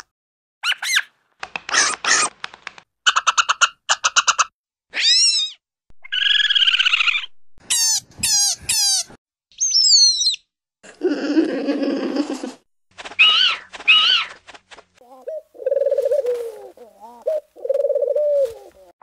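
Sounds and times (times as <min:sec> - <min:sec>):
cartoon chattering squeaks: 0:03.1 - 0:10.4.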